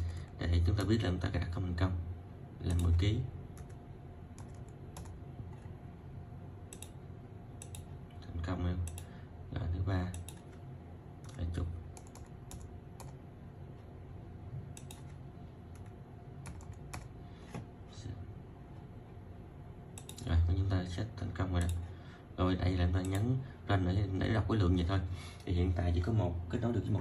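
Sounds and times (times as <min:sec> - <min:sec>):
laptop keyboard keys clicking: 0:04.4 - 0:05.2, 0:12.0 - 0:13.2, 0:14.8 - 0:15.1, 0:15.8 - 0:17.1.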